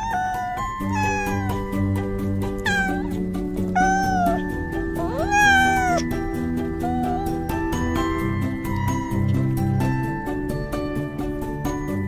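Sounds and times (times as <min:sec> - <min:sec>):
cat meowing: 0:00.0 - 0:09.5
background music: 0:00.0 - 0:12.0.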